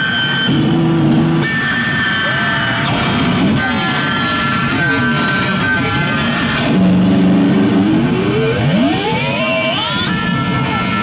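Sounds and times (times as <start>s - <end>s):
electric bass guitar solo: 0.0s - 11.0s.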